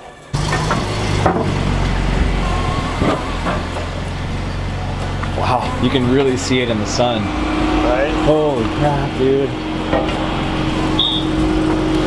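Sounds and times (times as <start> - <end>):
motorcycle engine idling: 0.4 - 12.0.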